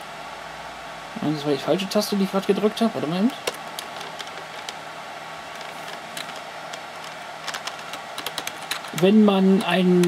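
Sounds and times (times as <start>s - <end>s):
steady background hum: 0.0s - 10.0s
computer keyboard keystrokes: 3.4s - 4.8s, 5.6s - 9.8s.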